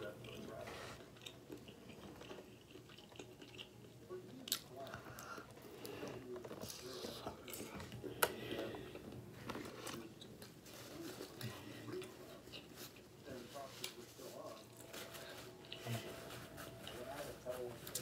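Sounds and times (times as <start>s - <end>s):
person chewing food: 0.0s - 16.0s.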